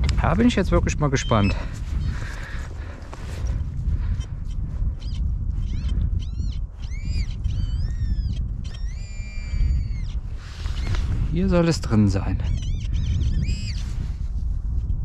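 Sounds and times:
birds calling: 0.0s - 13.9s
wind rumble on microphone: 0.0s - 15.0s.

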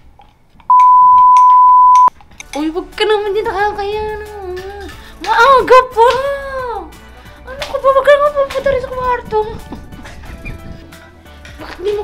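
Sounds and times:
censor bleep tone: 0.7s - 2.1s.

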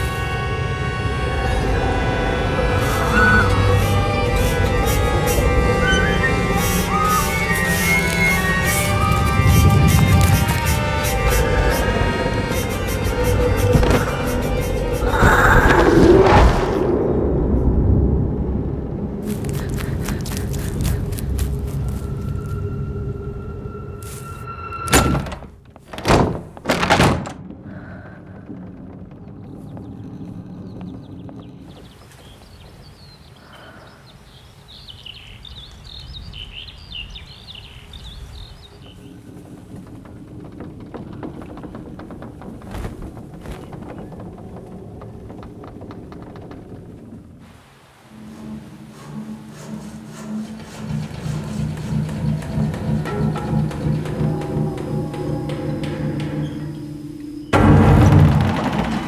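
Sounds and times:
heavy thuds: 39.2s - 47.2s.

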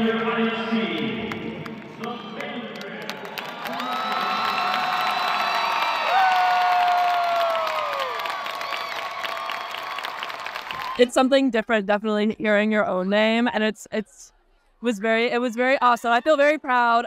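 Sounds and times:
large crowd cheering and screaming: 3.4s - 11.0s.

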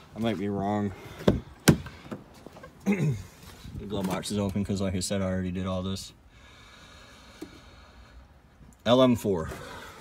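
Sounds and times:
person clearing throat: 2.8s - 3.4s.

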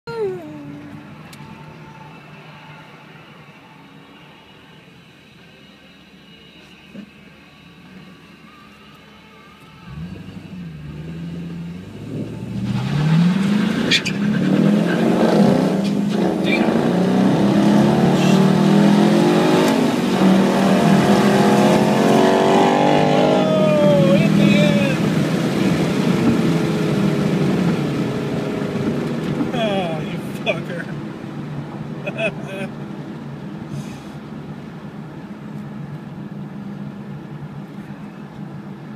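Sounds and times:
car engine revving and accelerating: 9.9s - 30.4s.

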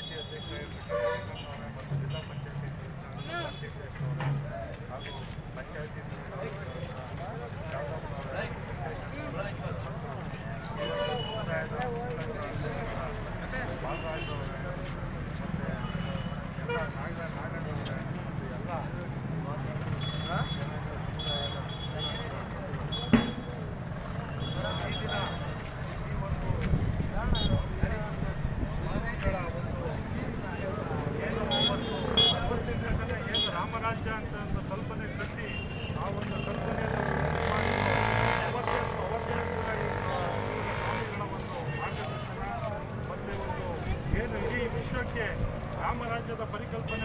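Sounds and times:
road traffic: 0.0s - 47.0s.

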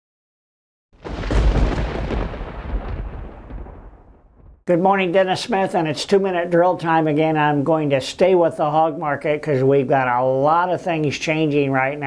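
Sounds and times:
thunder crack and rumble: 1.0s - 4.6s.

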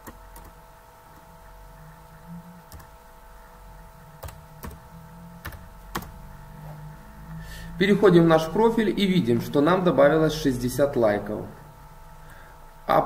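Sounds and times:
faint electrical hum: 0.0s - 13.0s.

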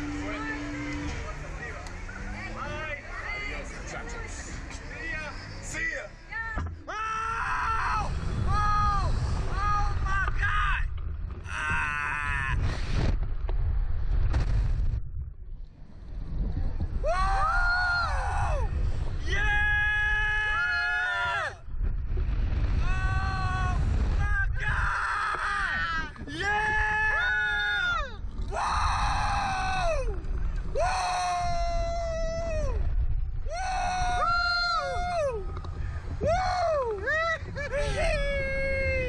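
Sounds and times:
wind rumble on microphone: 6.4s - 39.0s
riders screaming: 6.8s - 12.9s, 16.9s - 21.6s, 22.8s - 39.0s.

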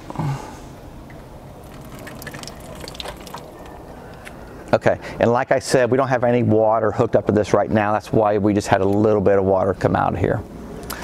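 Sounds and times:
water trickling and dripping: 1.1s - 3.9s.

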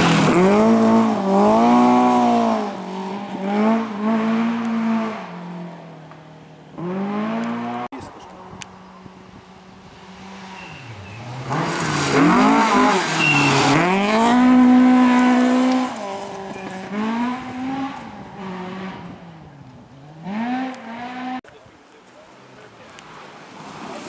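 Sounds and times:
rally car engine revving: 0.0s - 5.9s, 6.7s - 8.1s, 9.9s - 21.4s
tyres throwing gravel: 10.6s - 17.2s.

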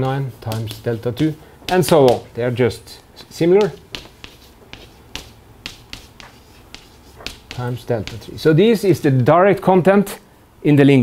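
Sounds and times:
chalk tapping on chalkboard: 0.0s - 2.6s, 3.2s - 8.5s.

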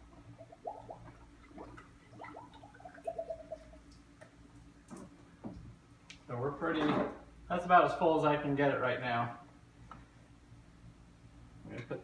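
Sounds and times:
water gurgling into radiator: 0.0s - 5.0s.

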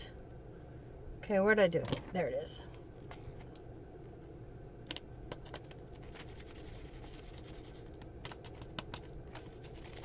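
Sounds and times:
paper rustling and tapping: 4.9s - 10.0s.

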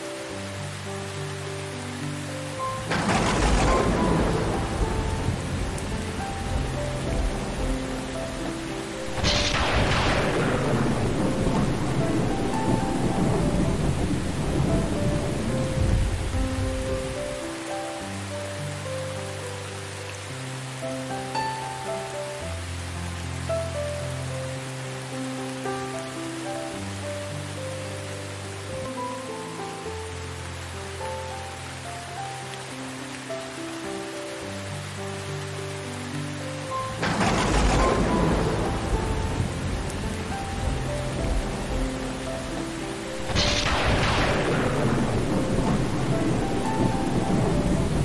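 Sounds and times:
slow soft instrumental music: 0.0s - 48.0s
steady rain: 0.0s - 48.0s
thunder rolling: 2.8s - 8.1s, 9.0s - 17.4s, 37.0s - 48.0s.

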